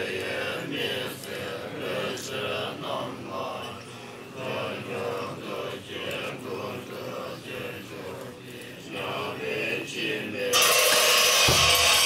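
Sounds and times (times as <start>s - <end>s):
monks chanting prayers: 0.0s - 12.0s.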